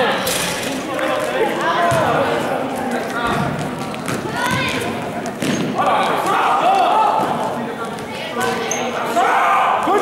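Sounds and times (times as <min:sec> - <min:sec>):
basketball bouncing on floor: 0:03.3 - 0:05.7.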